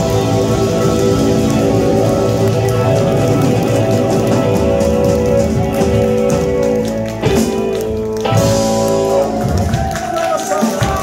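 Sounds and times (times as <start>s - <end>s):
rock band playing loudly: 0.0s - 11.0s.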